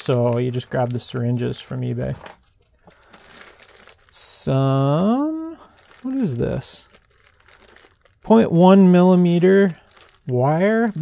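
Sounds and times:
plastic bags crinkling: 0.0s - 11.0s.

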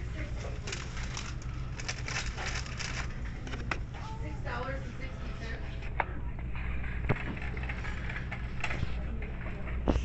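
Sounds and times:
steady low hum: 0.0s - 10.0s
plastic shopping cart rattling: 0.4s - 3.7s.

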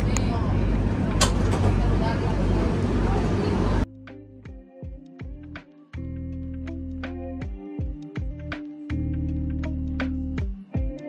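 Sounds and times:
metro train rumble and rattle: 0.0s - 3.9s.

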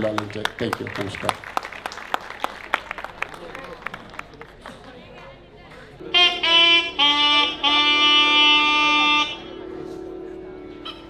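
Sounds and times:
reedy wind instrument note: 6.0s - 11.0s.

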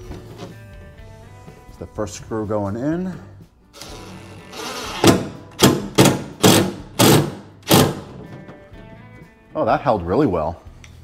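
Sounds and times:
cordless driver driving screw: 3.8s - 8.0s.

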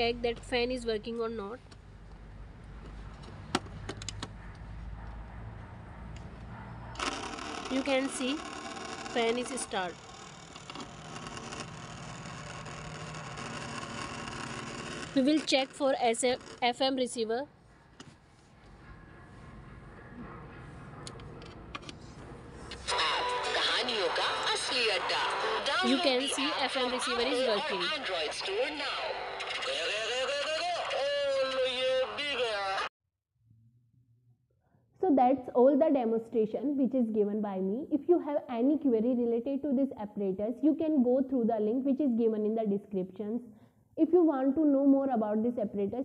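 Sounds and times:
small fan motor whirring: 7.0s - 17.3s.

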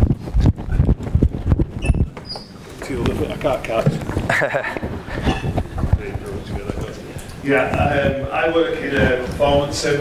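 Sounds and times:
heavy footsteps running: 0.0s - 8.2s.

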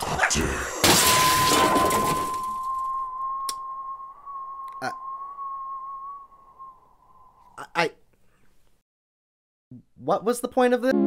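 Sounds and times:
electronic sine tone: 1.0s - 7.6s.

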